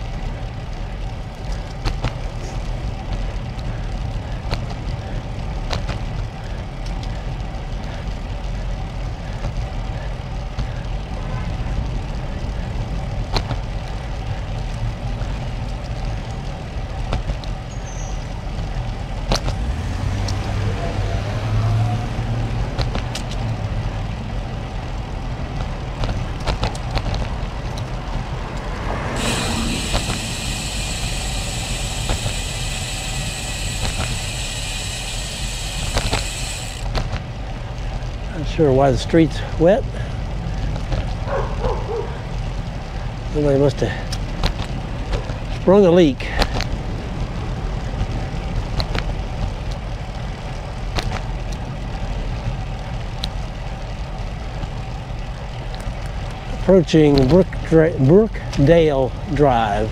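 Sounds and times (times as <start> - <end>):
bike tyres rolling on asphalt: 0.0 - 59.9
sharp clicks from road bumps: 0.0 - 59.9
steady high hiss: 29.2 - 36.9.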